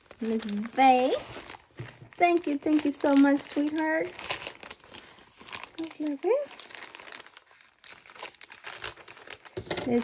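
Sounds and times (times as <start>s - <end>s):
plastic mailer bag crinkling: 0.0s - 10.0s.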